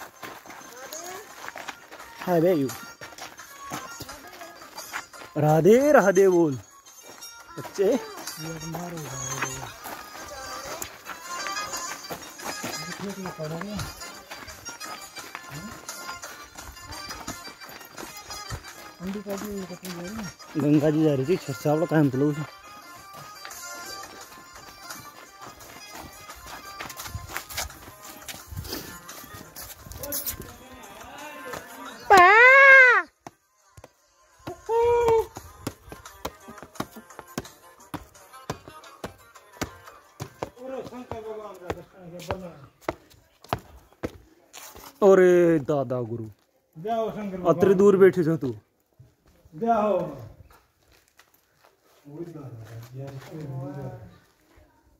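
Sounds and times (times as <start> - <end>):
footsteps crunching on dirt path: 0.0 - 54.9.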